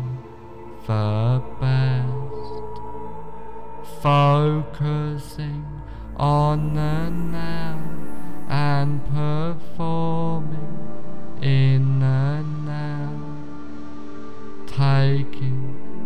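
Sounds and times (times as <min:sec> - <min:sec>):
sustained low drone: 0:00.0 - 0:16.0
voice chanting wavering notes: 0:00.0 - 0:16.0.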